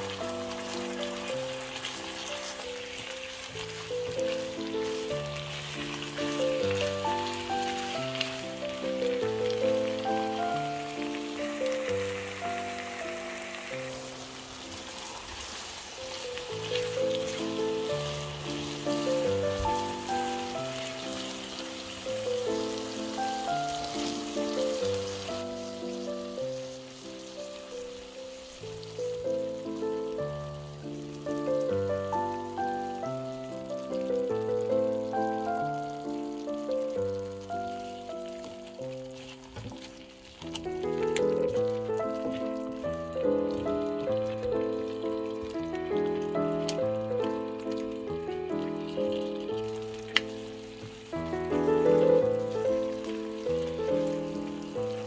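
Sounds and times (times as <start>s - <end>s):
meat and onion sizzling in oil: 0.0s - 55.0s
slow melodic background music: 0.0s - 55.0s.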